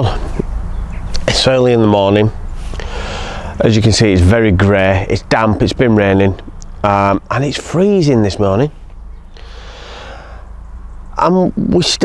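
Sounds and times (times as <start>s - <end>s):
steady low rumble: 0.0s - 11.6s
man breathing in: 2.6s - 3.6s, 9.3s - 10.6s.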